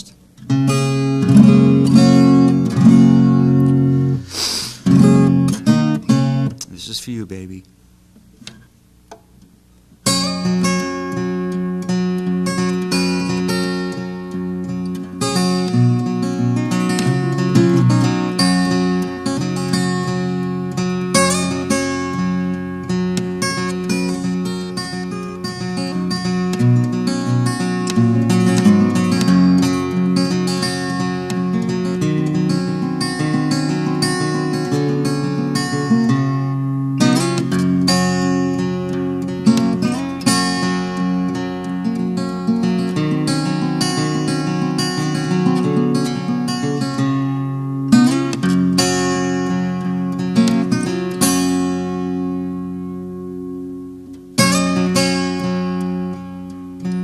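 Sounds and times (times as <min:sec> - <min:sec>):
acoustic guitar fingerpicked: 0:00.0 - 0:57.0.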